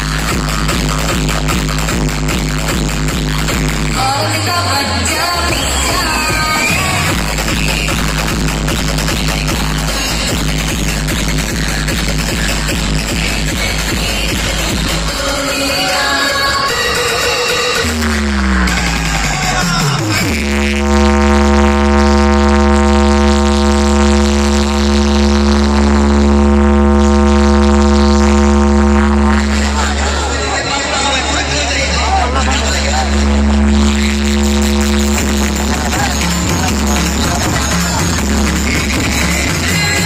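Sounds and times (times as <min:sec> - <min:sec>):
deep bass: 0:00.0 - 0:15.2, 0:17.8 - 0:40.0
loud electronic music: 0:00.0 - 0:40.0
falling pitch sweep: 0:18.1 - 0:30.4, 0:32.0 - 0:37.5
long held synth note: 0:20.3 - 0:30.4, 0:32.0 - 0:37.6.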